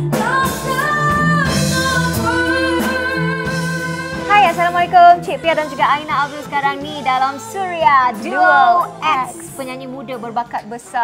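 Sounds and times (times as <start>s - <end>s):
band accompaniment: 0.0s - 10.9s.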